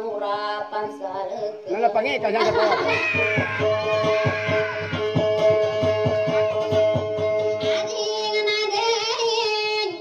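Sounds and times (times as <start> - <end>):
plucked string instrument: 2.2 - 8.6.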